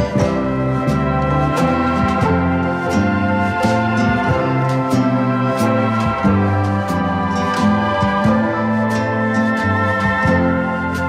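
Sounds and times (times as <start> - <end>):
sustained keyboard chords: 0.0 - 11.0.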